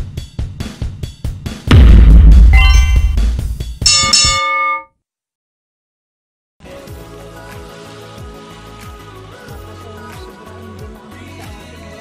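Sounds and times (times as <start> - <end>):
deep bass hit: 1.7 - 3.8
bright bell chime: 2.5 - 3.2, 3.9 - 4.8.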